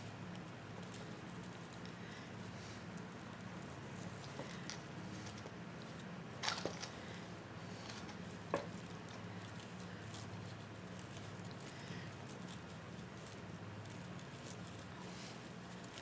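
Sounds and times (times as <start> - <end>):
ribbon rustling and crinkling: 0.0 - 16.0.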